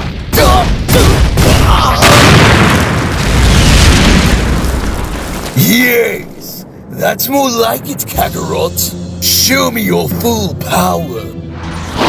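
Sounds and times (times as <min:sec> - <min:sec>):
cartoon explosion boom: 0:00.4 - 0:04.5
rumble of crumbling rock: 0:02.0 - 0:06.4
man's voice: 0:05.6 - 0:11.4.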